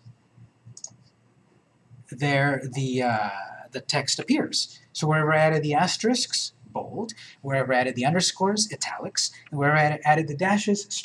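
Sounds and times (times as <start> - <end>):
computer mouse clicks: 0.0 - 1.2
low steady hum: 0.0 - 11.0.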